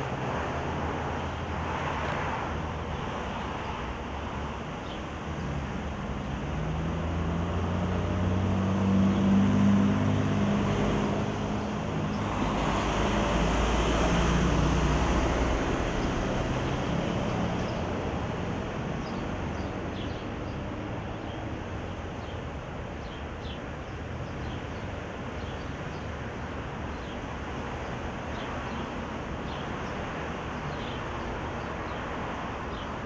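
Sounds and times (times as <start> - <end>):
vehicle driving past: 6.5 - 20.0.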